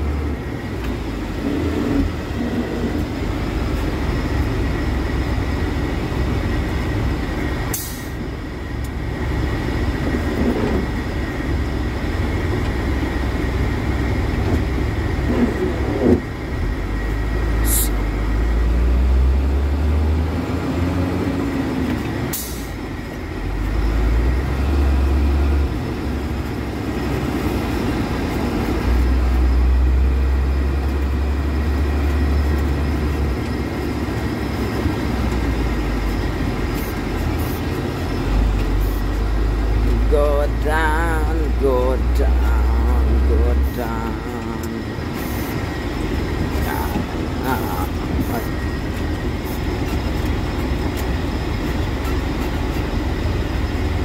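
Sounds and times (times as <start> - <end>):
truck engine rumble: 0.0 - 54.0.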